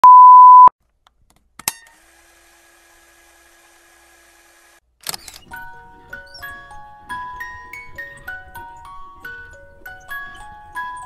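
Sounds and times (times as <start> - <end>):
electronic beep: 0.0 - 0.7.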